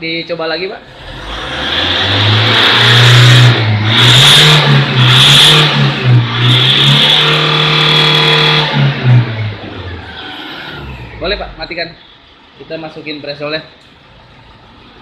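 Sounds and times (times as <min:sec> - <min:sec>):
diesel engine revving: 0:00.8 - 0:11.8.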